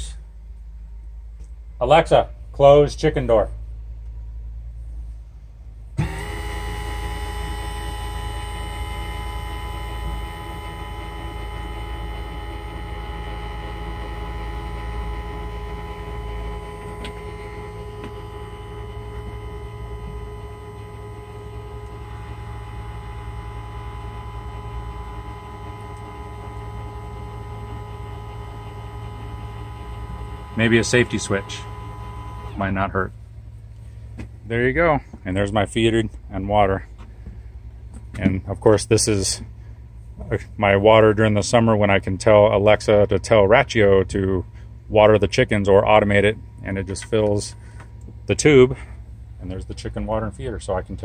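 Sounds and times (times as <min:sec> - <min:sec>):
linear actuator motor whine: 0:05.9 - 0:33.1, 0:37.0 - 0:51.0.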